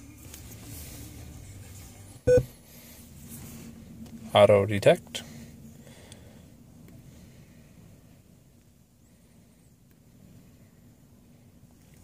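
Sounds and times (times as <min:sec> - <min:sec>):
short electronic beep: 0:02.3 - 0:02.5.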